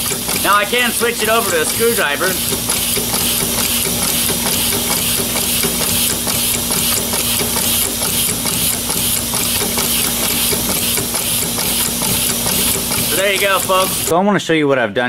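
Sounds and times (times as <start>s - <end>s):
air hissing: 0.0s - 14.1s
metallic knocks of air engine: 0.0s - 14.1s.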